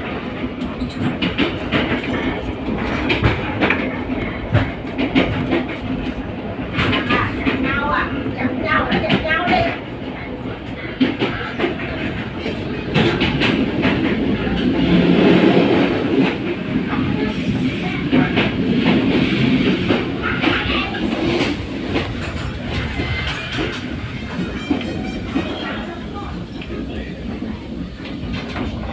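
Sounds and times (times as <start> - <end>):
train carriage rumble: 0.0 - 28.9
wheels clicking on rail joints: 0.0 - 28.9.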